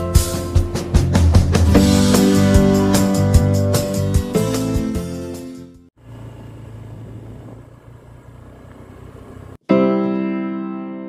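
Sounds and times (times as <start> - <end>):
guitar music: 0.0 - 5.8, 9.7 - 11.0
vehicle engine hum: 6.0 - 9.6.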